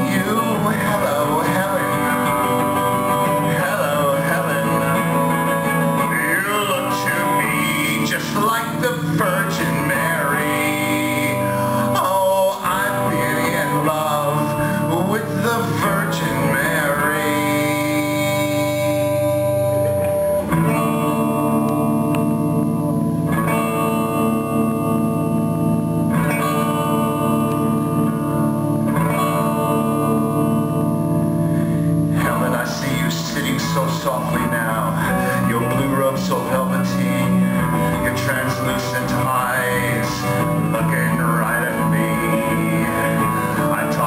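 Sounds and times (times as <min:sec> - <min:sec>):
electric guitar lead line: 0:00.0 - 0:44.0
sustained guitar chords: 0:00.0 - 0:44.0.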